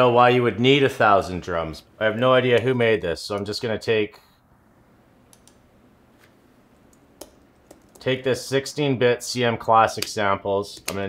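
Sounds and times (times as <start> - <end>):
computer keyboard and mouse clicks: 5.3 - 5.6.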